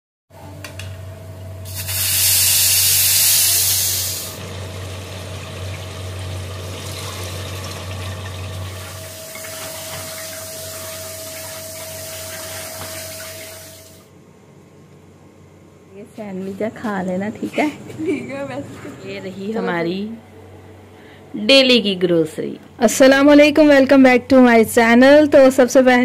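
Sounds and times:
pressure cooker steam hissing: 1.6 - 4.4, 8.7 - 14.0.

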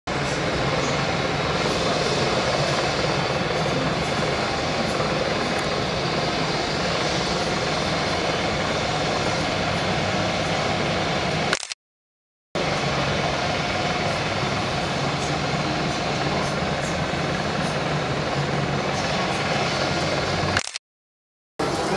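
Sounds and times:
helicopter rotor drone: 0.1 - 11.7, 12.6 - 20.8, 21.6 - 21.9.

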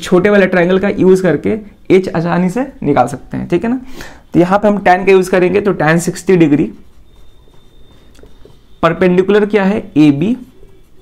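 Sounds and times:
person speaking: 0.0 - 7.1, 8.1 - 11.0
marker rubbing on whiteboard: 5.2 - 11.0.

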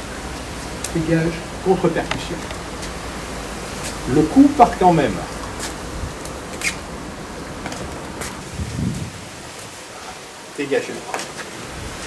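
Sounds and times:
background hiss: 0.0 - 12.0
footsteps swishing and scuffing: 5.6 - 5.8, 8.2 - 9.2.

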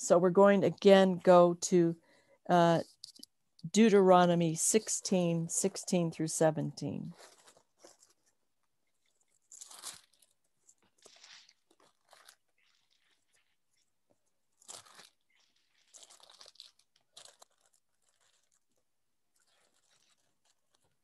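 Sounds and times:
book pages rustling: 7.1 - 21.0.

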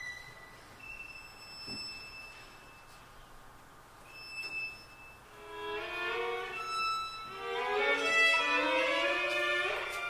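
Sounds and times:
solo violin: 5.3 - 10.0.

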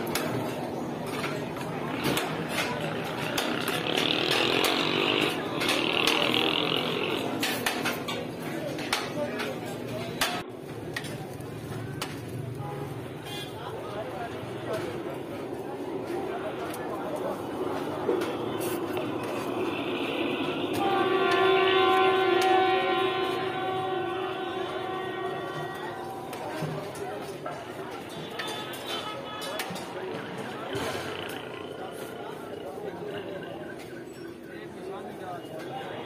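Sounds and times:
traffic noise: 0.0 - 36.0
voices: 0.0 - 36.0
long steady horn: 2.2 - 9.1, 12.6 - 32.7.

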